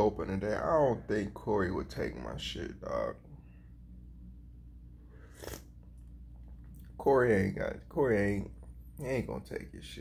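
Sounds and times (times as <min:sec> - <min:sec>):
faint low hum: 0:00.0 - 0:10.0
sip from a coffee mug: 0:05.1 - 0:06.6.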